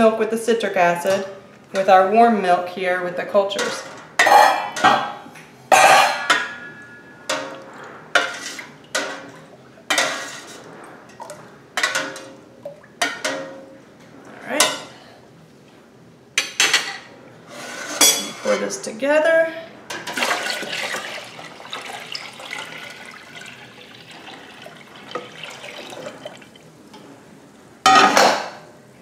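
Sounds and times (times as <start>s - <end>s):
metal ladle scraping a pot: 9.9s - 10.7s, 17.5s - 18.5s.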